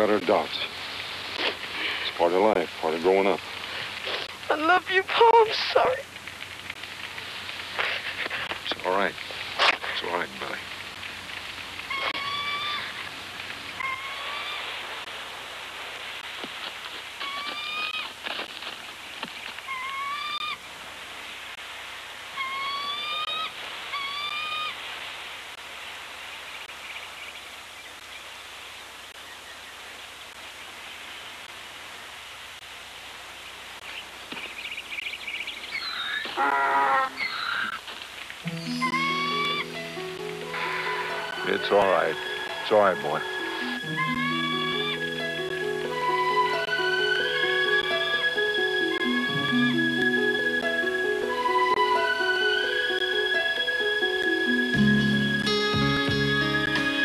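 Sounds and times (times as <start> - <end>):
steady hiss: 0.0 - 57.0
hawk whistled cries: 11.9 - 13.0, 22.4 - 24.8, 38.5 - 49.6
film score music: 38.4 - 57.0.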